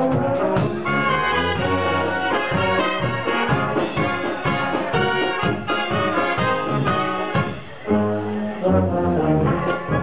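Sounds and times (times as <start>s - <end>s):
brass band playing dance music: 0.0s - 10.0s
low brass long notes: 0.0s - 10.0s.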